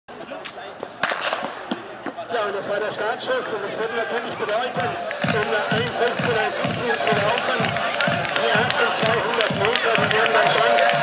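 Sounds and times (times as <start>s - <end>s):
voices talking: 0.1s - 11.0s.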